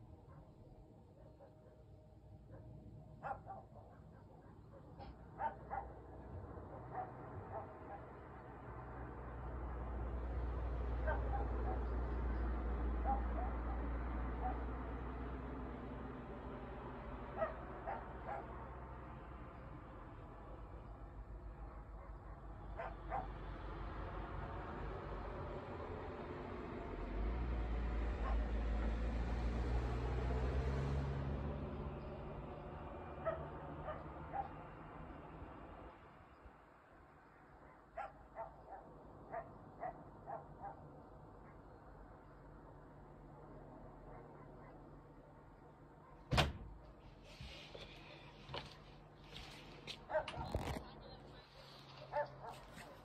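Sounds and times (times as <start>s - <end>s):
dog barking: 0.2s - 8.2s, 11.0s - 12.0s, 13.0s - 14.8s, 17.3s - 18.6s, 21.5s - 23.4s, 28.2s - 29.0s, 33.2s - 34.6s, 37.6s - 41.8s, 44.0s - 45.0s, 45.9s - 46.3s, 50.0s - 50.8s, 51.4s - 53.0s.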